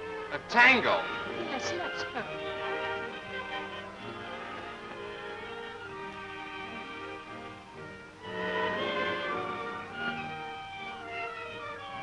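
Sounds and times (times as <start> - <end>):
dance band playing tango: 0.0 - 12.0
violins playing held notes: 0.0 - 12.0.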